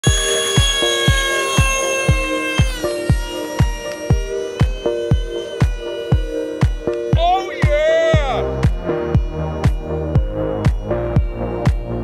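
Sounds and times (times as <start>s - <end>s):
high synth tones: 0.0s - 12.0s
kick drum beat: 0.0s - 12.0s.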